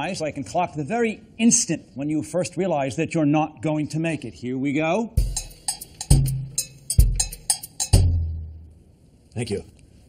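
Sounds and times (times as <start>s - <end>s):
heavy bass drum: 5.2s - 8.6s
sharp drum hits: 5.2s - 8.6s.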